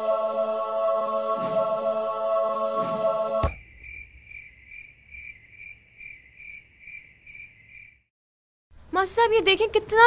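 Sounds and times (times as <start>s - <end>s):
cricket chirping: 3.5s - 8.1s.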